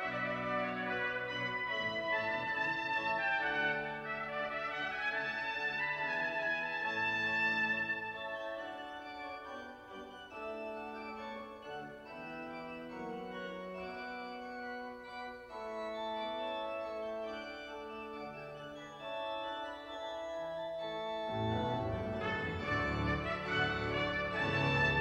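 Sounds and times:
pipe organ playing chords: 0.0 - 25.0.

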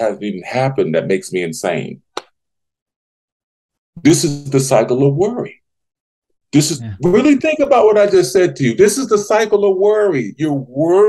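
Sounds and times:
hand snap: 2.1 - 2.4.

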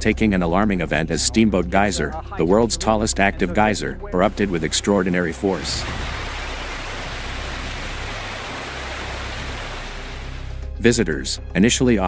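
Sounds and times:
geyser water and steam jetting: 4.2 - 10.6.

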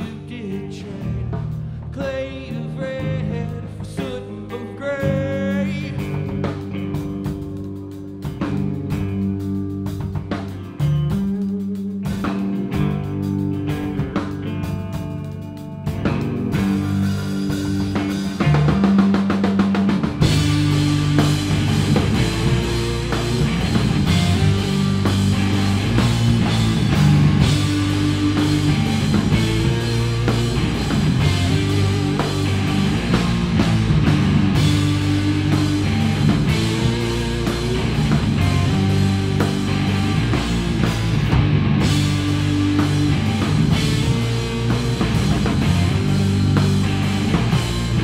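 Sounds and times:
rock band playing: 0.0 - 48.0.

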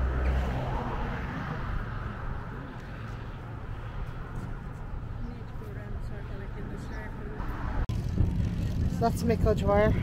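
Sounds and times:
wind buffeting microphone: 3.6 - 10.0.

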